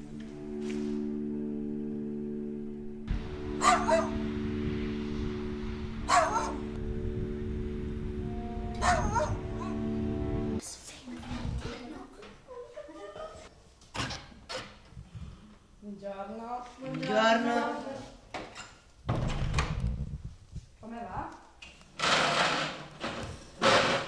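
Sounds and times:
background music chord: 0.0 - 10.6
dog barking: 3.6 - 4.2, 6.1 - 6.6, 8.8 - 9.8.

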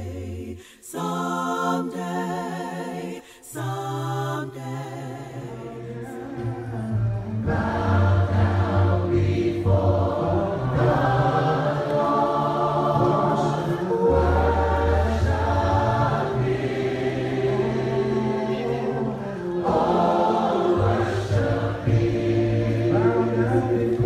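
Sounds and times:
choir singing gospel song: 0.0 - 24.0.

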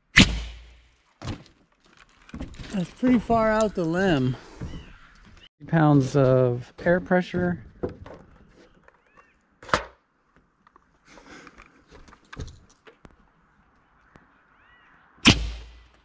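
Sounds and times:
air cannon blast: 0.1 - 0.8, 15.2 - 15.9.

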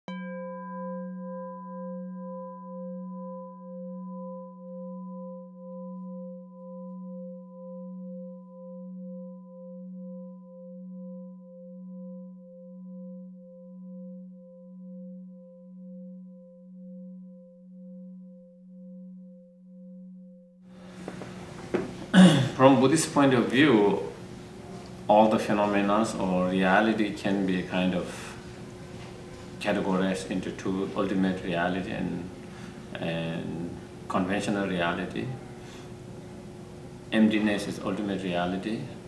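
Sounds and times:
singing bowl ringing: 0.1 - 20.8.

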